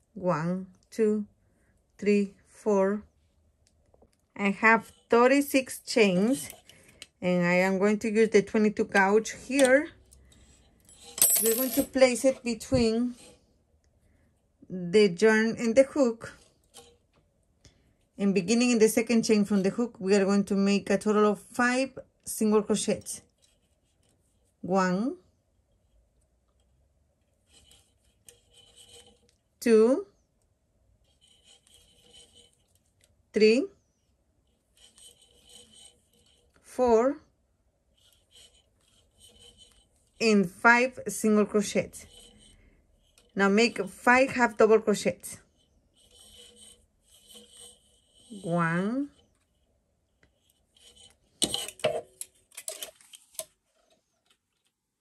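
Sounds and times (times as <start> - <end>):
crochet hook scratching yarn: 4.3 - 13.5, 15.0 - 17.2, 18.0 - 54.2.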